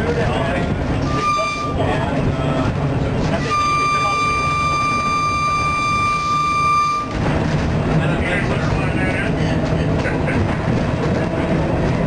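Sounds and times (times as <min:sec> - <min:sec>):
trolley car rumbling on rails: 0:00.0 - 0:12.0
trolley car horn: 0:01.0 - 0:02.1, 0:03.3 - 0:07.2.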